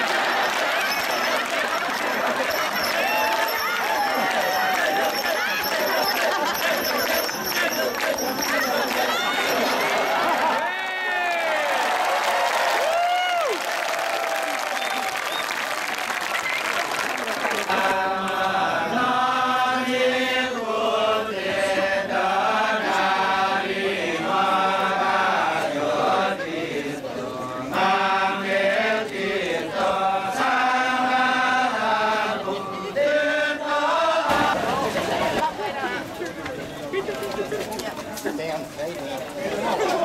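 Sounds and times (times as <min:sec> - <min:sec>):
men chanting in unison: 0:04.2 - 0:09.7, 0:17.7 - 0:34.6.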